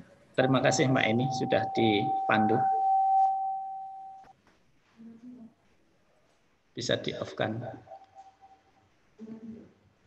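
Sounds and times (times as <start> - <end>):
high electronic tone: 0.4 - 4.3.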